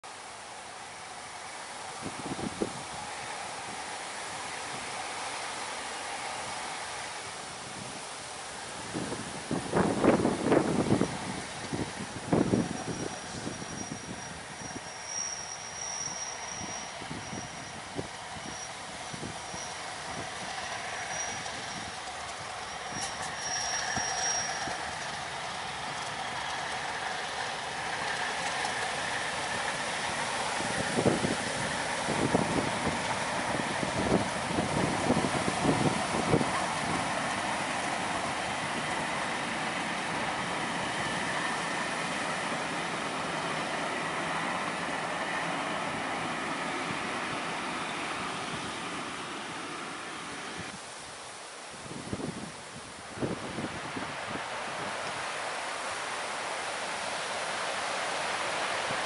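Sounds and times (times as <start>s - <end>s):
diesel locomotive rumble: 0.1s - 59.0s
high-pitched squeal: 22.6s - 25.0s.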